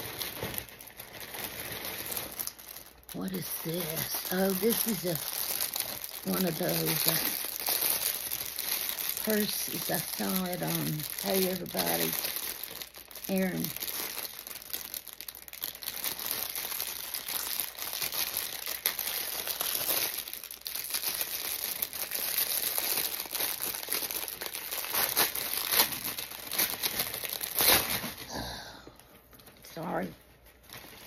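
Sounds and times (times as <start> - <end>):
packaging crinkling: 0.0 - 28.3, 29.0 - 31.0.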